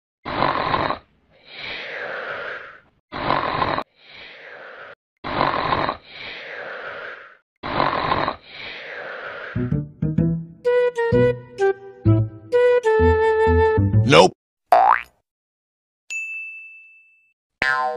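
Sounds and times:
person snoring loudly: 0.3s - 9.7s
flute music: 9.6s - 14.3s.

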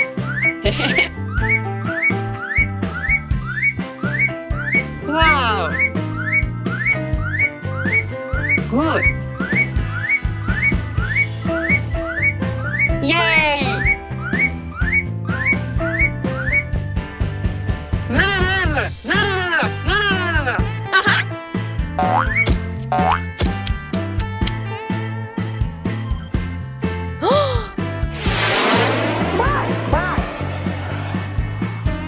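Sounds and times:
cartoon background music: 0.0s - 27.8s, 29.3s - 32.0s.

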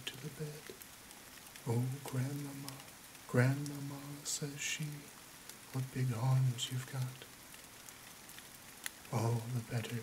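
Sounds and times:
faint steady rain: 0.0s - 10.0s.

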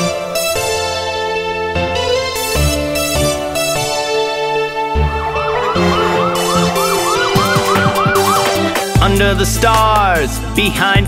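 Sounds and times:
background music: 0.0s - 11.0s
police siren: 3.5s - 9.0s.

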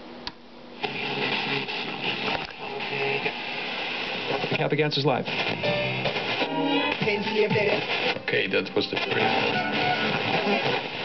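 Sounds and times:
radio static and hiss: 0.8s - 11.0s.

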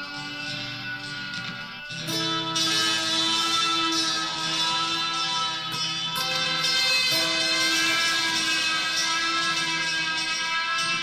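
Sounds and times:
electric guitar with delay: 0.0s - 11.0s.

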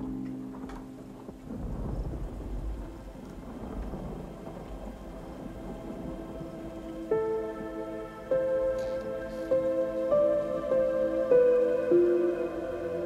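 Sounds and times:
ambient music chord: 0.0s - 13.0s
crackling rumble of thunder and rain: 0.0s - 13.0s.

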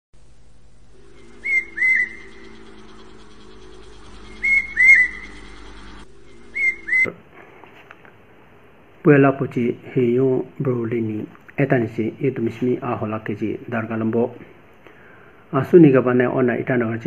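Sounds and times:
low steady hum: 0.2s - 15.6s
high two-note whistled call: 1.2s - 5.4s.

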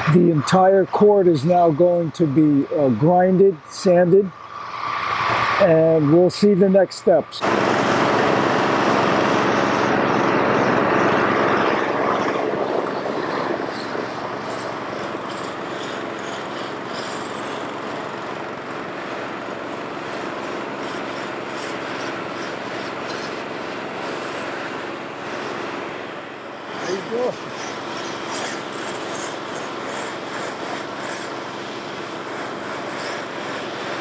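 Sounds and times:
machine hum: 7.1s - 34.0s
floor scraper rasping on court: 7.4s - 34.0s.

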